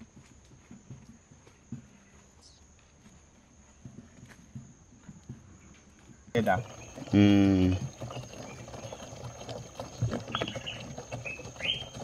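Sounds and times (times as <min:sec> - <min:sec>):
liquid gurgling into plastic container: 0:06.4 - 0:12.0.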